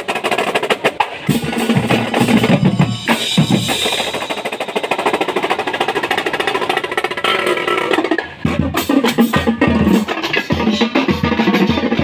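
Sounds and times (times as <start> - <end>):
drumline rapid drum strokes: 0.0 - 12.0.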